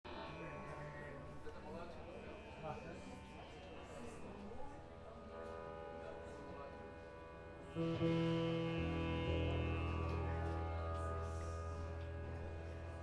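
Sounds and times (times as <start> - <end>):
faint talking: 0.1 - 13.0
band playing veena over bass: 7.2 - 13.0.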